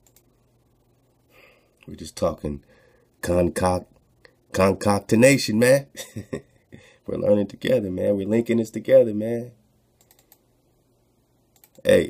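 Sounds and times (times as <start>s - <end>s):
computer mouse clicks: 0.0s - 0.3s, 10.0s - 10.5s, 11.5s - 11.8s
man talking: 1.8s - 3.9s, 4.5s - 6.0s, 7.1s - 9.6s, 11.8s - 12.0s.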